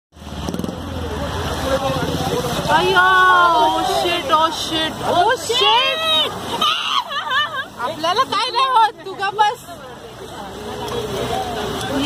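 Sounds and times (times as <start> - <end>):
vehicle engine running: 0.2 - 3.3
voices: 0.5 - 12.0.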